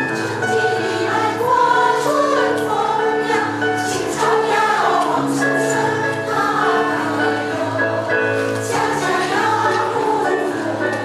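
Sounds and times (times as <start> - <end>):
women's choir singing: 0.0 - 11.0.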